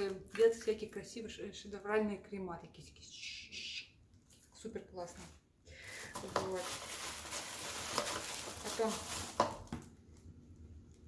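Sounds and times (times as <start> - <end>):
packaging rustling and crackling: 5.2 - 10.3.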